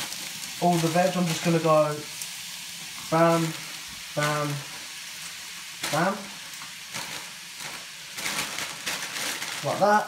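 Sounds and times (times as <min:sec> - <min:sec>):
stir-fry sizzling in a pan: 0:00.0 - 0:10.0
plastic bag crinkling: 0:05.8 - 0:10.0.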